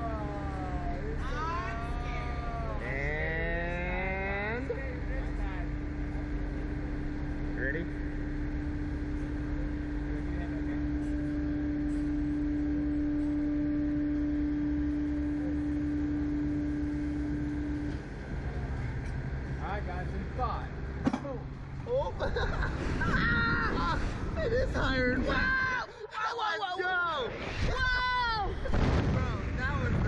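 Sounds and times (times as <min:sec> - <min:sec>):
winch motor whine: 0:00.0 - 0:26.1
constant low rumble: 0:00.0 - 0:30.0.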